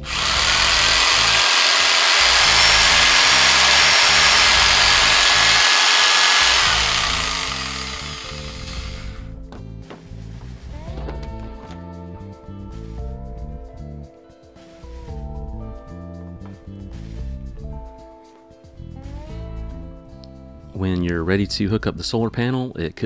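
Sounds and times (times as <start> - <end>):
jigsaw running: 0.0 - 9.3
background music: 6.4 - 23.0.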